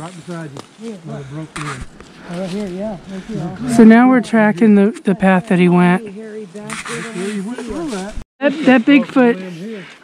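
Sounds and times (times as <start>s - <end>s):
people talking: 0.0s - 9.9s.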